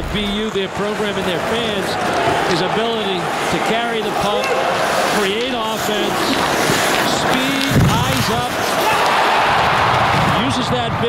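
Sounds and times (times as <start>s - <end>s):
man talking: 0.0s - 8.6s
arena crowd din: 0.0s - 11.0s.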